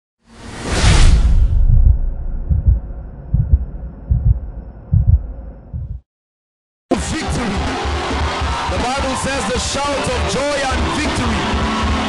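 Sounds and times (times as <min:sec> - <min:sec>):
whoosh: 0:00.3 - 0:03.9
low rumble: 0:00.6 - 0:06.0
low double thumps: 0:01.1 - 0:06.0.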